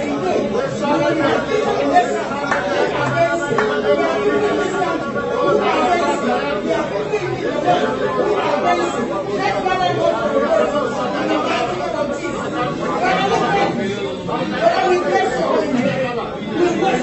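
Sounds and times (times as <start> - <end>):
crowd chatter in large room: 0.0 - 17.0.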